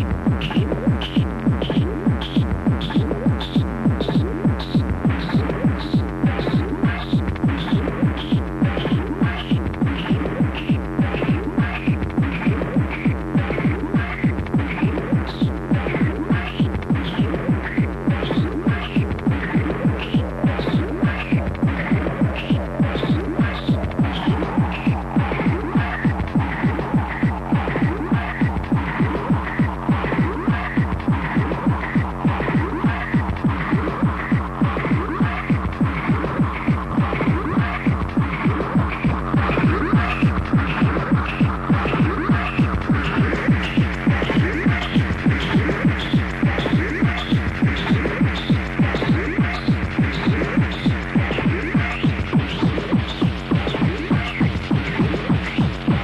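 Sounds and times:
hard techno music: 0.0 - 56.0.

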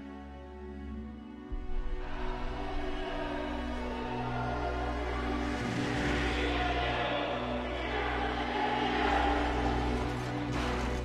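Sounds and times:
low sustained orchestral chords: 0.0 - 11.0.

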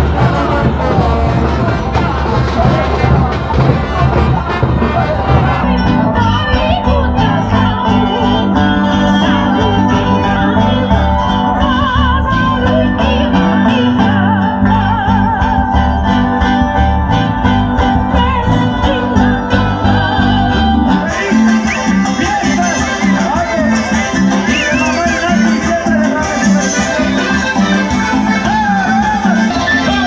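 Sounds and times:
person singing: 0.0 - 16.8, 17.4 - 30.0
steady bass notes: 0.0 - 30.0.

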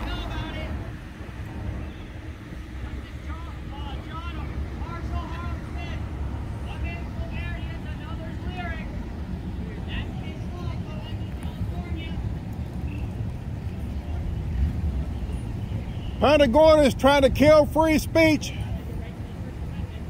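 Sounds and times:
distant voices talking: 0.0 - 20.0.

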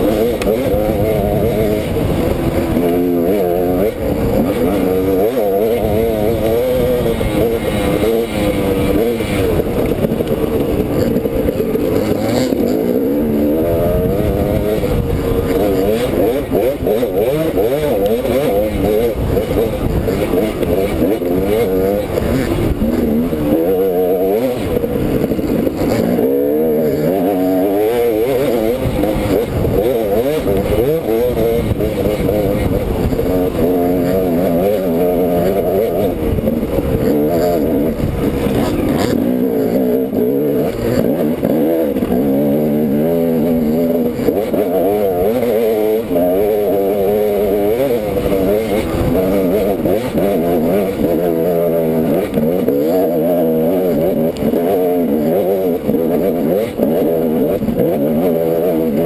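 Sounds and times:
dirt bike engine revving: 0.0 - 59.0
wind buffeting rumble: 5.8 - 17.6, 18.3 - 23.6, 28.8 - 42.5.

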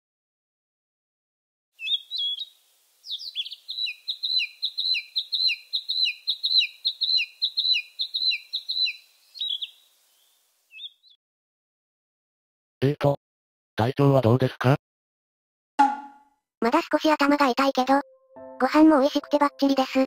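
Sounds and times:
songbird singing: 1.8 - 11.2.

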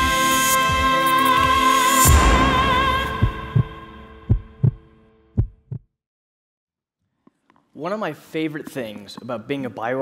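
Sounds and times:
heartbeat thumps: 3.0 - 5.9.

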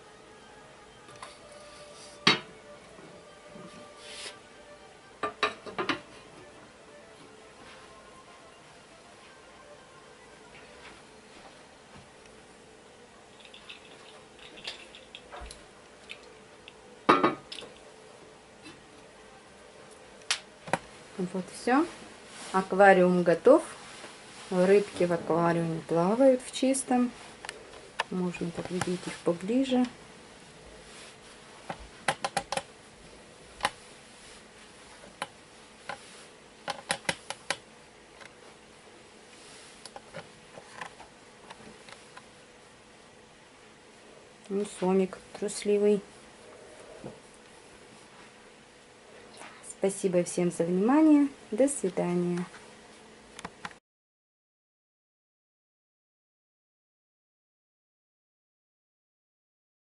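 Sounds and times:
faint steady hum: 0.0 - 53.8
sharp irregular clicks and taps: 32.1 - 32.7.

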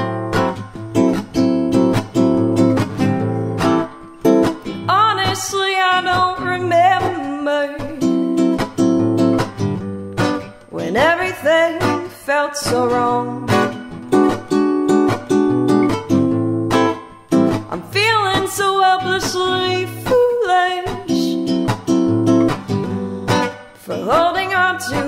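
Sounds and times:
classical guitar: 0.0 - 25.0
woman singing: 4.8 - 8.6, 10.7 - 13.9, 17.5 - 21.8, 22.5 - 25.0.

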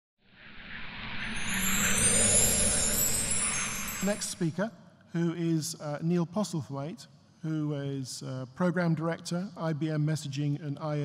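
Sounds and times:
whooshing swell: 0.3 - 4.6
shimmering high tones: 0.4 - 4.9.

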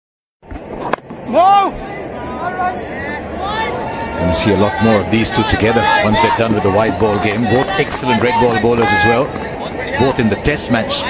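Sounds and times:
crowd noise: 0.4 - 11.0
player shouting: 1.3 - 11.0.

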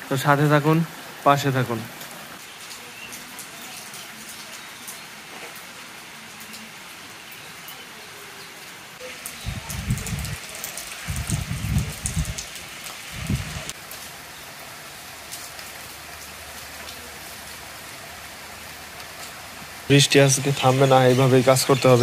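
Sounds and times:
rain patter on water: 0.0 - 22.0.

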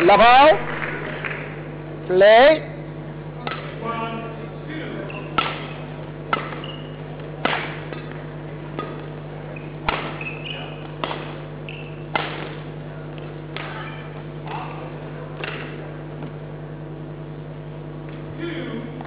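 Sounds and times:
low hum: 0.0 - 19.0
racket hitting shuttlecock: 3.4 - 3.8, 5.1 - 16.4
shoes squeaking on court: 5.0 - 16.4.

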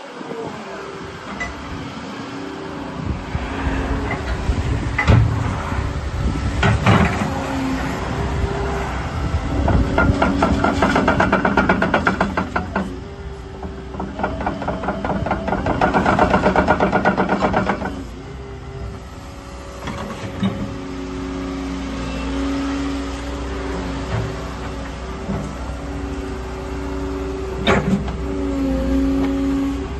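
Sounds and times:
diesel engine running: 0.0 - 29.9.

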